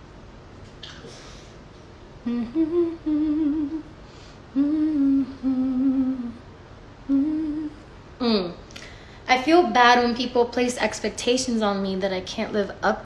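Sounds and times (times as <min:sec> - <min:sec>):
woman humming: 0:02.2 - 0:06.4, 0:07.0 - 0:08.7.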